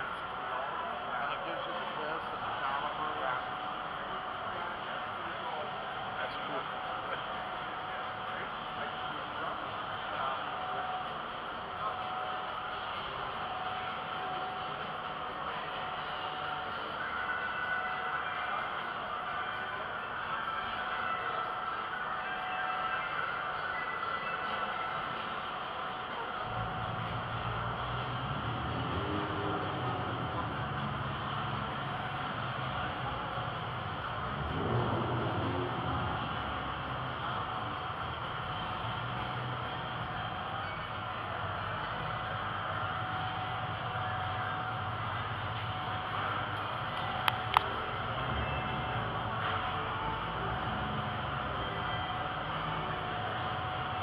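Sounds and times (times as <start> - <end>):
indoor crowd hubbub: 0.0 - 54.0.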